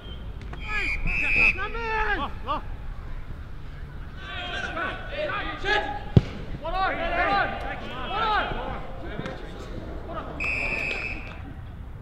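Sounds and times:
people shouting calls: 0.5 - 2.8, 4.0 - 11.6.

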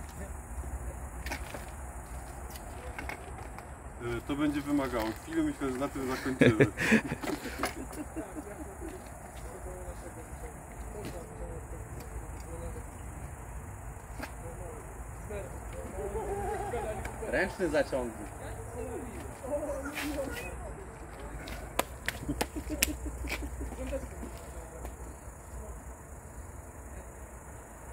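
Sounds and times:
faint voices: 14.1 - 21.8.

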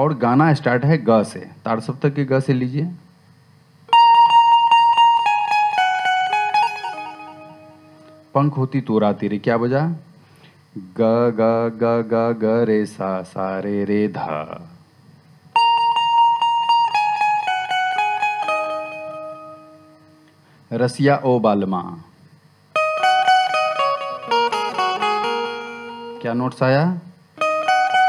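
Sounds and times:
banjo tremolo picking: 3.9 - 8.0, 15.6 - 19.8, 22.8 - 26.2, 27.4 - 28.0.

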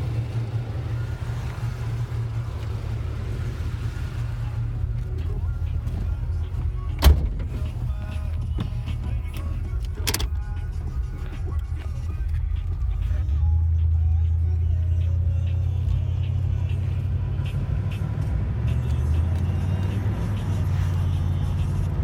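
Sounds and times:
car engine drone from inside cabin: 0.0 - 22.0.

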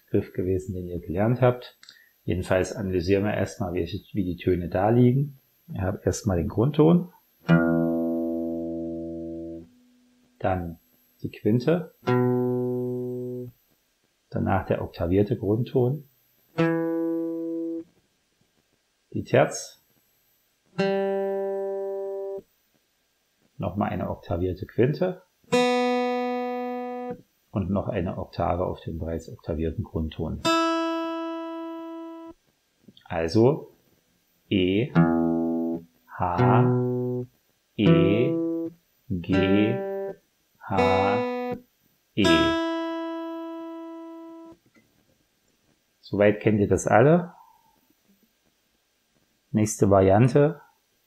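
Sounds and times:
acoustic guitar note plucked: 7.5 - 9.9, 12.0 - 13.5, 16.6 - 17.8, 20.8 - 22.4, 25.5 - 27.2, 30.4 - 32.4, 34.9 - 41.6, 42.2 - 44.6.

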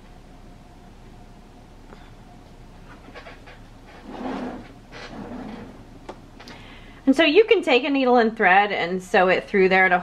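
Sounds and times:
breathy exhalations: 6.4 - 7.0.

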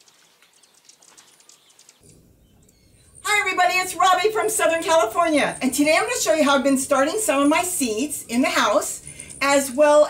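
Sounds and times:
background hiss: 0.0 - 10.0
birds chirping: 0.0 - 10.0.

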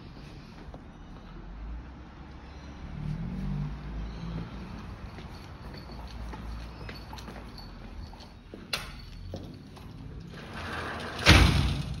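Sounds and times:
footsteps on tiled floor: 4.2 - 10.1.

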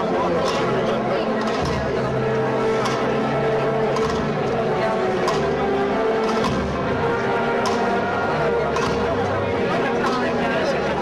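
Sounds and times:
wind band playing a march: 0.0 - 11.0.

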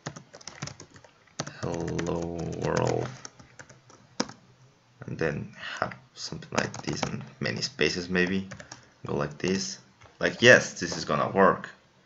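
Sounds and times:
computer keyboard keystrokes: 0.0 - 4.4, 6.6 - 7.2, 8.5 - 8.8.

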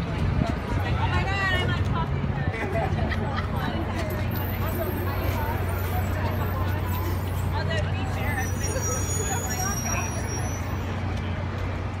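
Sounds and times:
people talking: 0.0 - 11.4
low rumble of traffic: 0.0 - 12.0.

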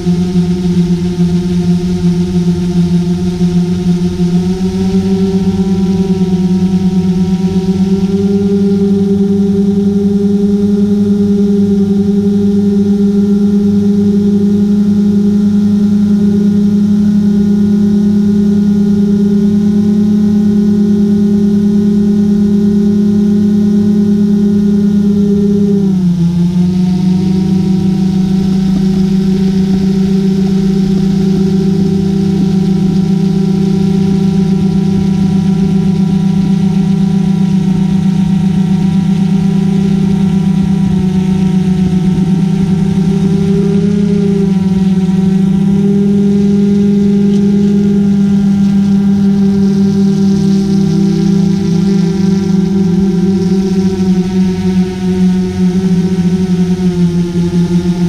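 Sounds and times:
drone propellers humming: 0.0 - 58.0.

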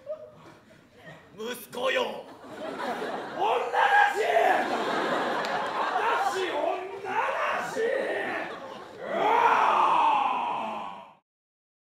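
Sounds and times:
human wailing cry: 7.0 - 11.2.

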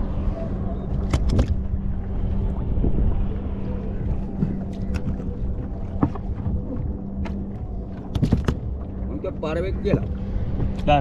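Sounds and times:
steady low hum: 0.0 - 11.0
wind and water rumble: 0.0 - 11.0.

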